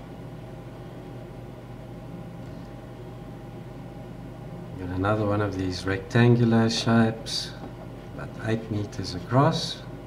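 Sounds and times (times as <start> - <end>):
background hum and hiss: 0.0 - 10.0.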